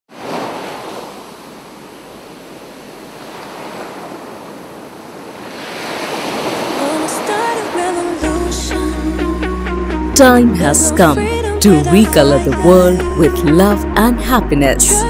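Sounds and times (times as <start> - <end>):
ocean surf breaking: 0.1 - 8.3.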